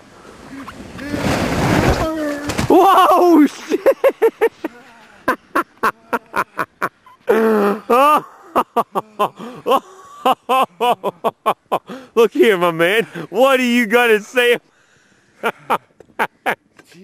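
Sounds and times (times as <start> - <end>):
person laughing hard: 3.5 - 11.9.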